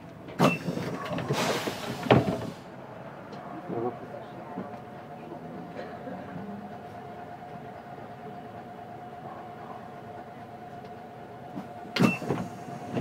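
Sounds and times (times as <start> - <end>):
bus idling hum: 0.0 - 13.0.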